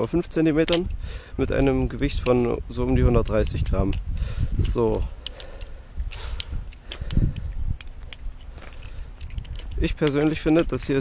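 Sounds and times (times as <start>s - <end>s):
balisong trainer clicking and clacking: 3.1s - 11.0s.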